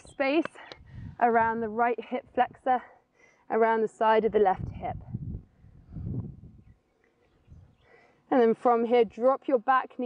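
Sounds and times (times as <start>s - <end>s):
low rush of noise on microphone: 0.0s - 10.0s.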